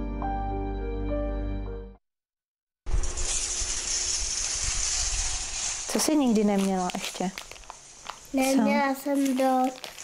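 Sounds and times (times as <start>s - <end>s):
steady high hiss: 2.9s - 10.0s.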